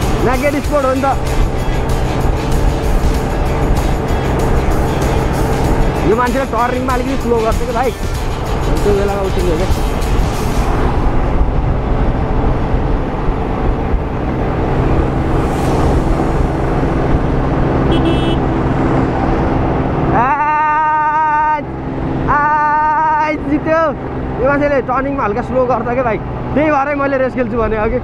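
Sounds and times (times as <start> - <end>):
scooter engine hum: 0.0 - 25.2
wind on microphone: 9.6 - 17.5.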